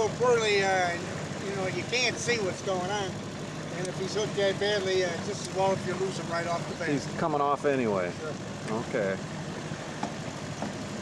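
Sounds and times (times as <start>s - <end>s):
outboard motor running: 0.0s - 11.0s.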